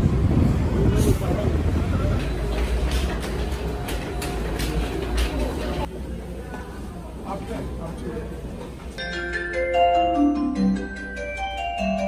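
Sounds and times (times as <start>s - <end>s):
low traffic rumble: 0.0s - 9.0s.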